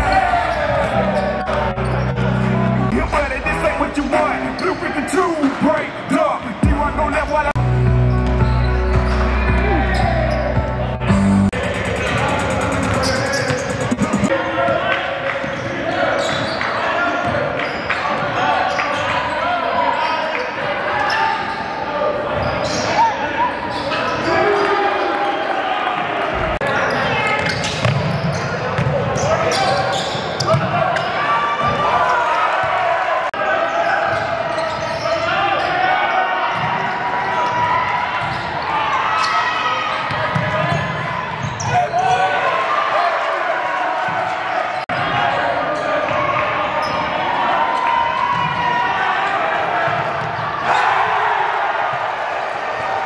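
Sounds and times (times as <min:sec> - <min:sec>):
indistinct voices echoing: 0:00.0 - 0:17.6.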